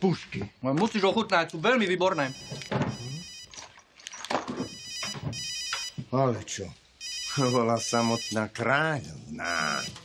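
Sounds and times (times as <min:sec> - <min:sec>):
phone electronic ringtone: 0:02.2 - 0:03.5, 0:04.6 - 0:06.0, 0:07.0 - 0:08.4.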